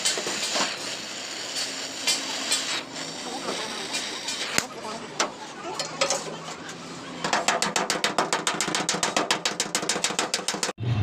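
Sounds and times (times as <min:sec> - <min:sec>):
hammer tapping on sheet metal: 0:07.2 - 0:10.8.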